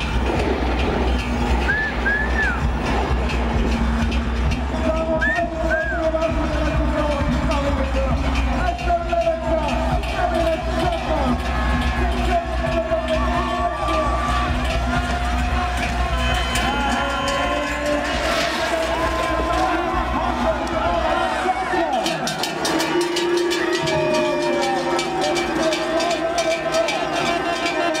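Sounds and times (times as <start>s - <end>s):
crowd cheering and shouting: 0.0s - 28.0s
music: 0.0s - 28.0s.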